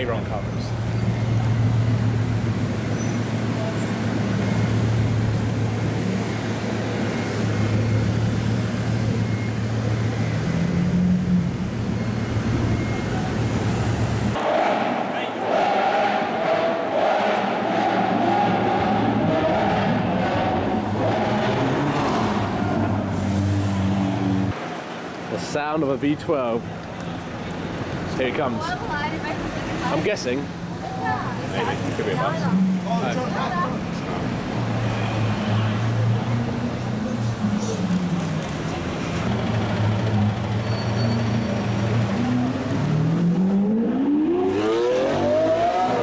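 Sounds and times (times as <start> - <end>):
street noise: 0.0 - 46.0
indistinct voices: 14.4 - 24.5.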